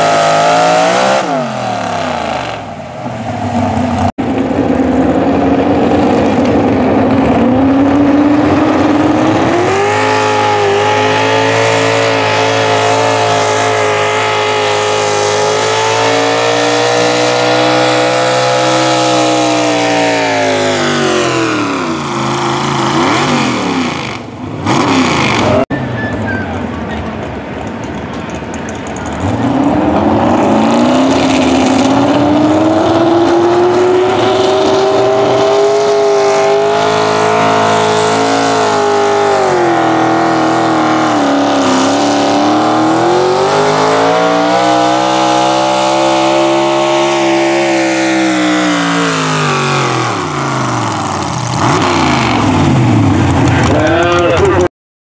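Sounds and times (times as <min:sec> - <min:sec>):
second truck engine: 0:00.0 - 0:54.7
truck engine at full throttle: 0:00.0 - 0:54.7.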